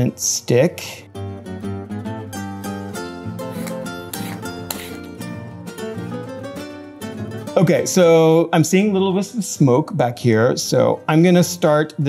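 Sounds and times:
plucked string music: 0:01.2 - 0:12.0.

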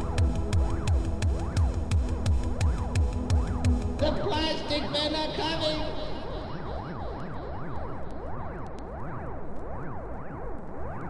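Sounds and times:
drum-machine kick: 0:00.0 - 0:04.6
hardcore techno music: 0:00.0 - 0:09.3
gliding synth line: 0:00.0 - 0:11.0.

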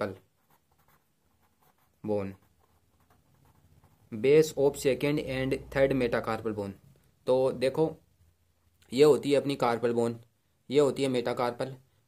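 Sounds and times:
pen scratching on paper: 0:00.1 - 0:04.6.

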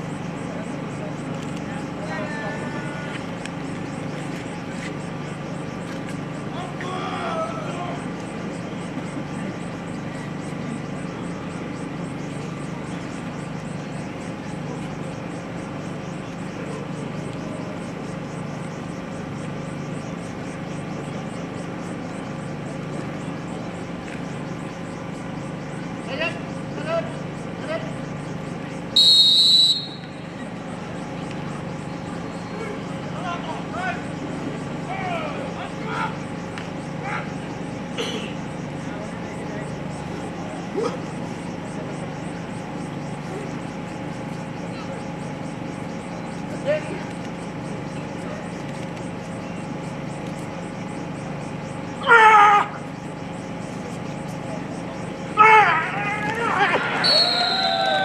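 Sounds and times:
crowd murmur: 0:00.0 - 0:29.0, 0:29.7 - 0:58.0
voices calling out: 0:00.0 - 0:58.0
referee's whistle blast: 0:28.9 - 0:30.2, 0:56.9 - 0:58.0.

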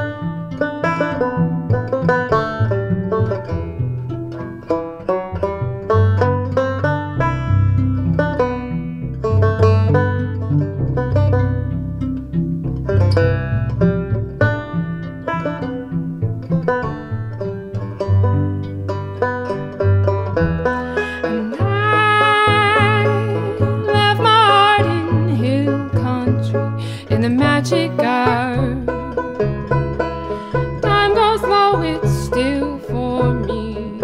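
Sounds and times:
banjo picking quick runs: 0:00.0 - 0:34.0
plucked cello bass line: 0:00.0 - 0:34.0
woman singing: 0:21.0 - 0:28.9, 0:30.8 - 0:34.0.

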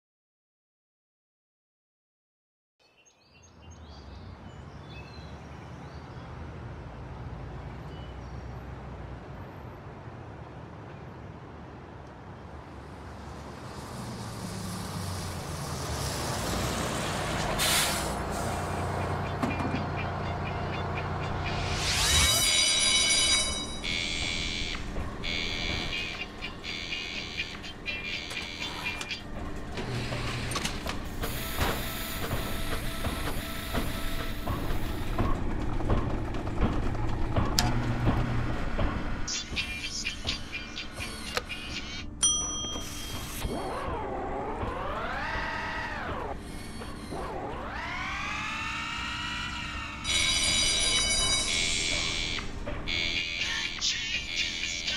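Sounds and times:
engine hum: 0:11.3 - 0:54.9
electronic beeps and tones: 0:19.6 - 0:29.1, 0:50.1 - 0:54.9.

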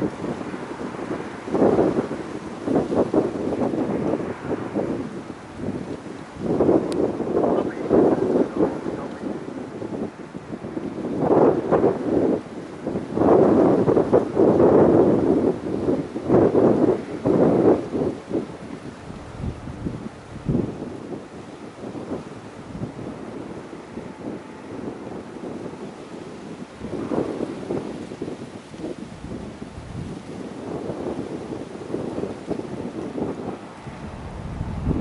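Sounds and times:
wind buffeting microphone: 0:00.0 - 0:35.0.

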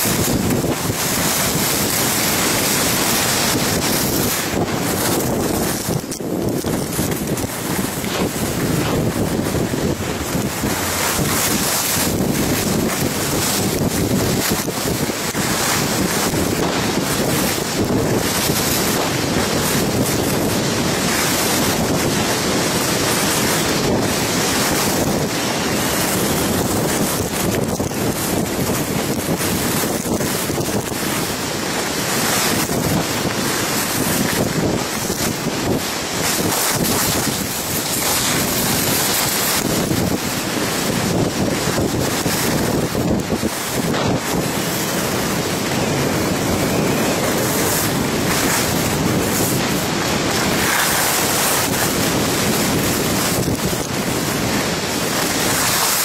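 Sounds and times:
skis scraping on snow: 0:00.0 - 0:56.0
wind on microphone: 0:00.0 - 0:56.0.

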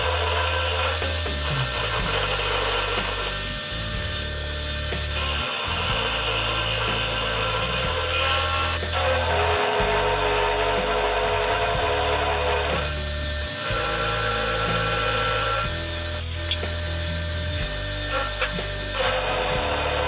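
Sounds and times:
milling machine whine: 0:00.0 - 0:20.0.

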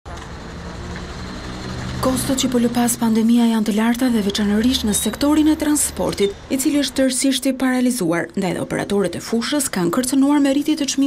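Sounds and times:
bus engine humming: 0:00.1 - 0:11.0
street traffic noise: 0:00.1 - 0:11.0.

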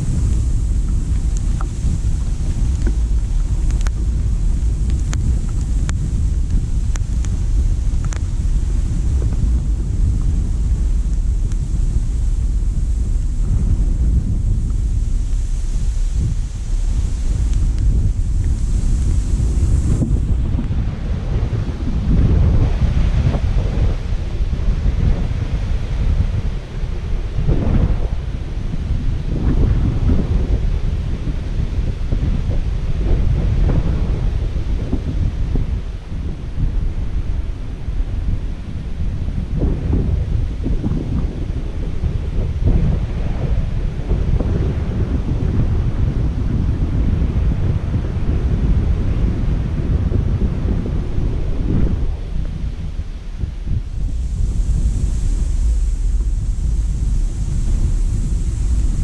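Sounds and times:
gusty wind buffeting microphone: 0:00.0 - 0:59.0.

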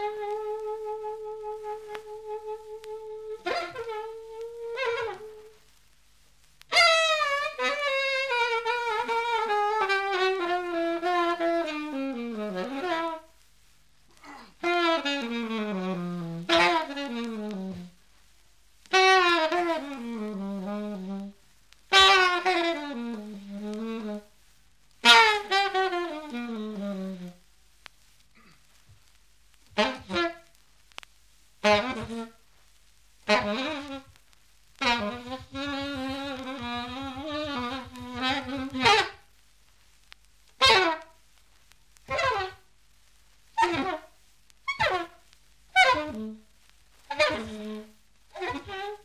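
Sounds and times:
alto saxophone solo: 0:00.0 - 0:05.6, 0:06.7 - 0:13.4, 0:14.2 - 0:18.0, 0:18.9 - 0:24.4, 0:25.0 - 0:27.4, 0:29.7 - 0:30.5, 0:31.6 - 0:32.4, 0:33.2 - 0:34.2, 0:34.8 - 0:39.3, 0:40.6 - 0:41.2, 0:42.0 - 0:42.7, 0:43.5 - 0:49.0.

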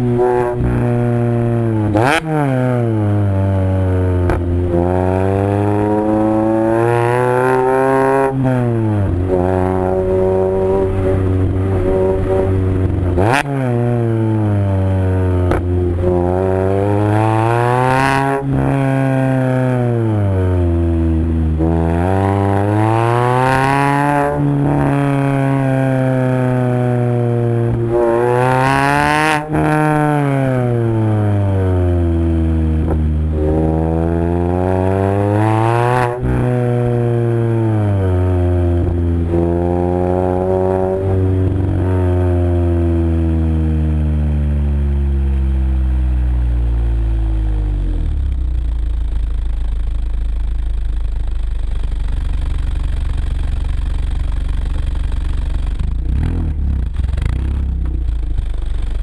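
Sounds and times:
car engine revving: 0:00.0 - 0:59.0
car engine idling: 0:45.9 - 0:59.0.

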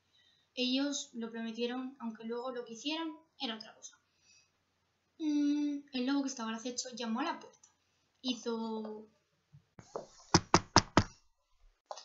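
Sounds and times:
knocking on hard surface: 0:09.8 - 0:11.2.

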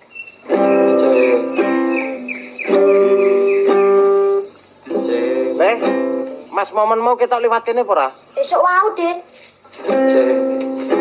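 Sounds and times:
acoustic guitar chords strummed: 0:00.4 - 0:06.6, 0:09.7 - 0:11.0.

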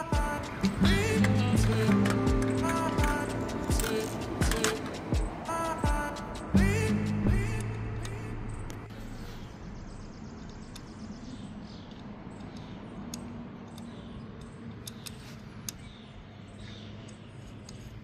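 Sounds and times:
hands clicking and tapping parts: 0:00.1 - 0:06.5, 0:11.9 - 0:15.9.

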